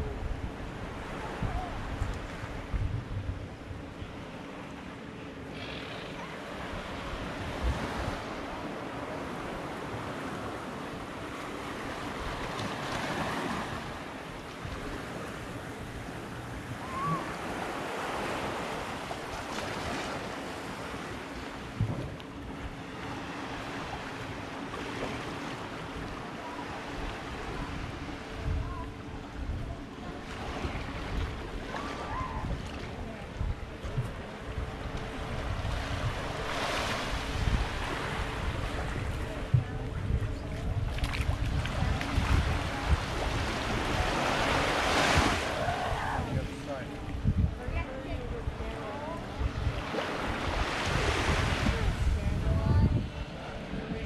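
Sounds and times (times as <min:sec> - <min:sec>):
wind on microphone: 0:00.0 - 0:04.2, 0:05.5 - 0:08.8, 0:12.0 - 0:20.8, 0:21.6 - 0:22.8, 0:25.9 - 0:54.0
small waves washing on shore: 0:00.0 - 0:54.0.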